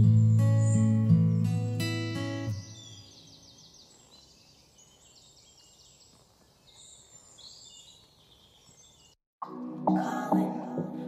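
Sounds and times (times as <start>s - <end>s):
faint bird chirping: 0.0s - 9.2s.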